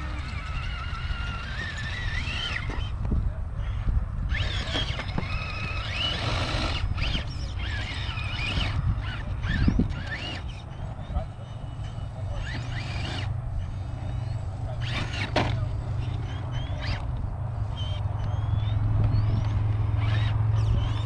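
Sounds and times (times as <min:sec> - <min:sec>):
rc car motor whining: 0:00.0 - 0:21.0.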